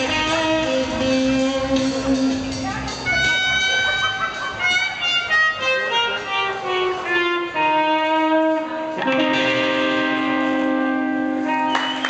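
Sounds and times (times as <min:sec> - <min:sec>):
electric guitar notes ringing: 0:00.0 - 0:12.0.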